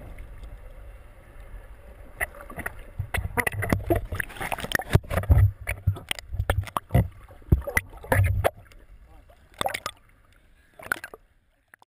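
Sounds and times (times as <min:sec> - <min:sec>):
water sloshing and splashing: 0:02.1 - 0:11.8.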